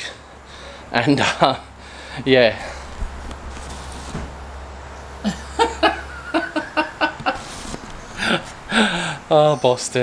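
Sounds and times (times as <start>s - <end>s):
person laughing: 5.2s - 9.1s.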